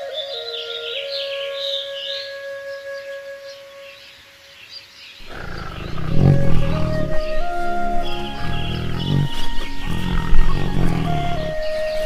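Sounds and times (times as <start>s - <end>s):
flute melody: 0.0s - 4.4s, 6.2s - 12.0s
birds chirping: 0.0s - 12.0s
tiger roaring: 5.2s - 12.0s.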